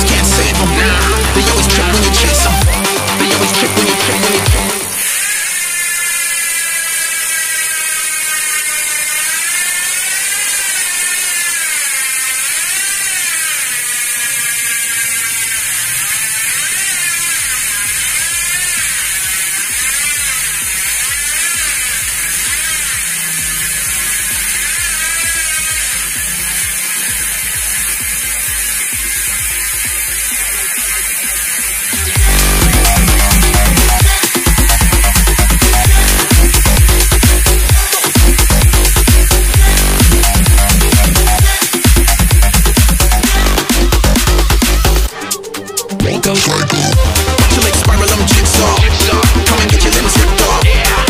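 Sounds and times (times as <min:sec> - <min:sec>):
bicycle freehub ratcheting buzz: 0:00.0 - 0:51.0.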